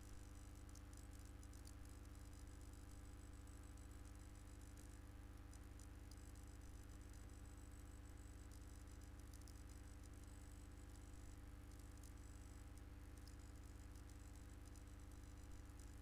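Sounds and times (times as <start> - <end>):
faint low hum and hiss: 0.0 - 16.0.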